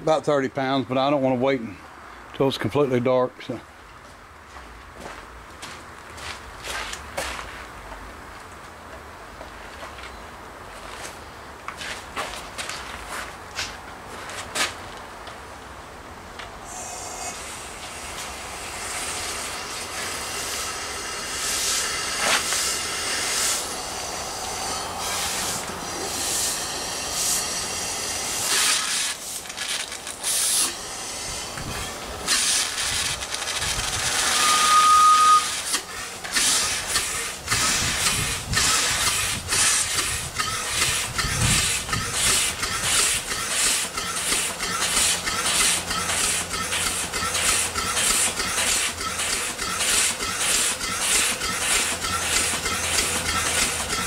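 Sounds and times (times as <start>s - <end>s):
high steam whistle: 16.6s - 29.1s, 34.0s - 35.8s
steam engine exhaust chuffs: 16.6s - 54.0s
steam hissing: 16.6s - 54.0s.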